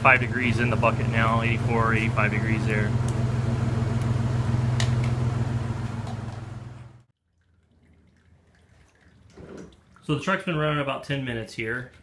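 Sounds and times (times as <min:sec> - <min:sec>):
truck and pump hum: 0:00.0 - 0:07.1
faint water trickle: 0:07.2 - 0:12.0
water from hose into bucket: 0:07.2 - 0:12.0.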